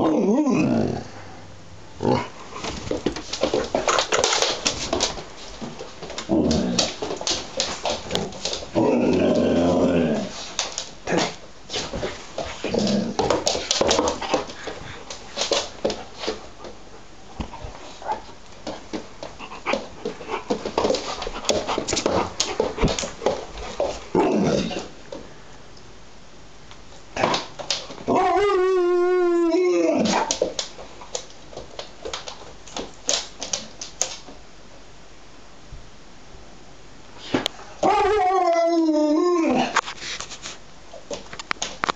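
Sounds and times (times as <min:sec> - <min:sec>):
dog moaning and grumbling: 0:00.0 - 0:01.2, 0:06.2 - 0:07.1, 0:08.2 - 0:11.4, 0:12.6 - 0:14.4, 0:24.1 - 0:25.0, 0:28.0 - 0:30.3, 0:37.7 - 0:39.8
dog long howling call: 0:28.1 - 0:30.2.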